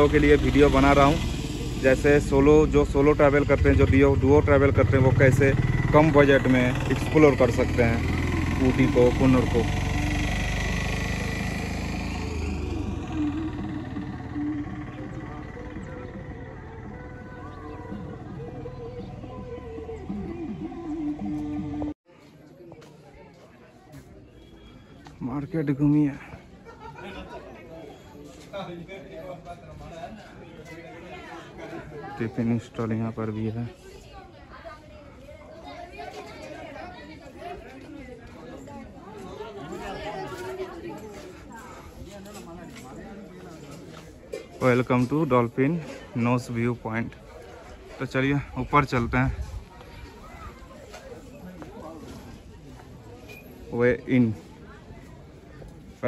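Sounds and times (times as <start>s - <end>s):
vehicle engine running: 0.0s - 22.0s
background chatter of voices: 0.0s - 56.0s.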